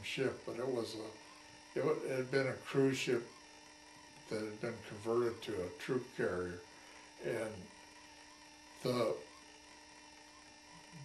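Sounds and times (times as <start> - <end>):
man speaking: 0.0 - 1.2, 1.8 - 3.3, 4.3 - 6.6, 7.2 - 7.7, 8.8 - 9.2
faint electrical hum: 0.0 - 11.0.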